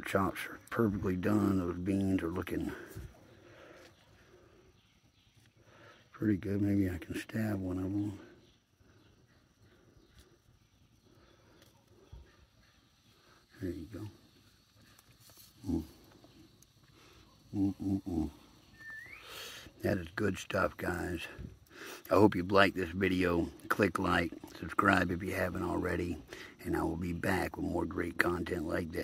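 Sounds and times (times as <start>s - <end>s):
faint bird call: 14.7s - 19.8s
man humming mm of enjoyment: 17.5s - 18.5s.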